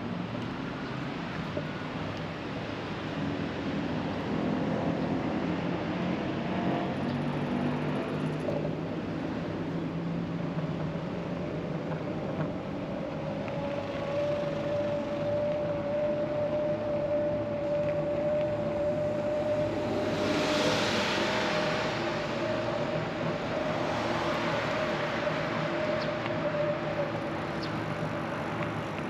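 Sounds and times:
road traffic: 0.0 - 29.0
electric bike motor whine: 14.0 - 20.3
vehicle passing close: 19.3 - 26.0.

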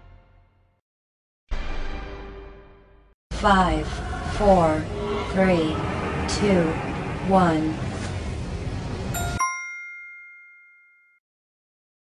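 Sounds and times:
bell-like ding: 9.2 - 11.2.

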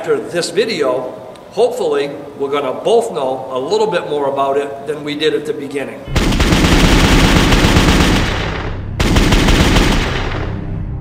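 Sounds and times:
rapid automatic gunfire: 6.1 - 10.6.

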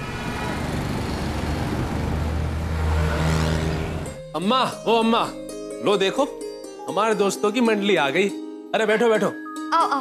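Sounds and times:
cars driving past: 0.0 - 4.2
engine hum: 0.0 - 4.3.

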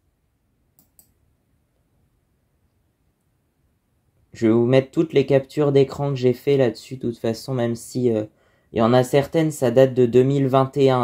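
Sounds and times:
faint clicks: 0.8 - 1.2.

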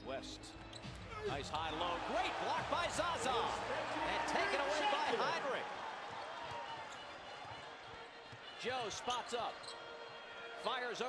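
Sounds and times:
arena noise: 0.9 - 11.0.

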